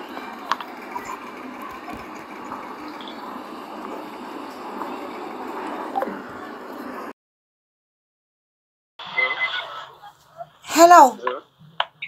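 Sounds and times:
muffled voices over phone call: 9.0s - 12.0s
person saying hello loudly: 10.7s - 11.2s.

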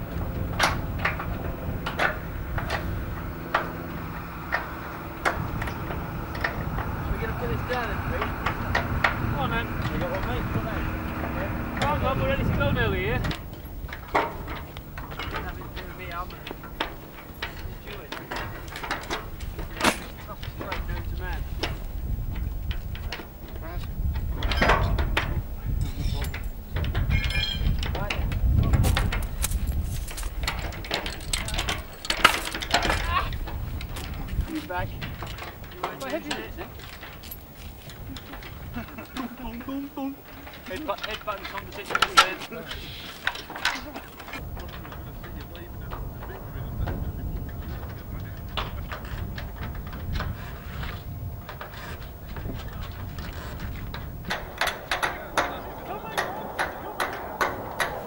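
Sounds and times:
metallic clanks and knocks: 0.0s - 42.6s, 43.2s - 58.0s
machine droning: 0.0s - 58.0s
indistinct voices: 1.1s - 22.2s, 37.9s - 58.0s.

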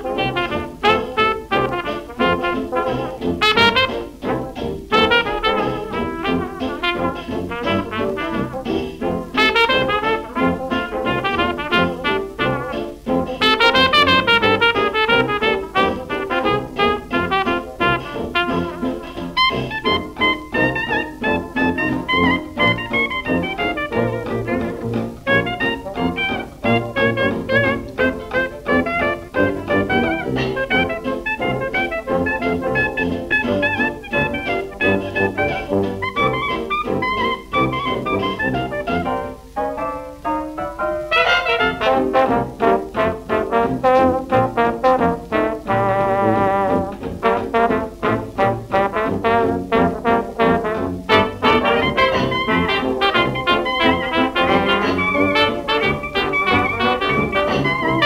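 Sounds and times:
hot jazz band playing: 0.0s - 58.0s.

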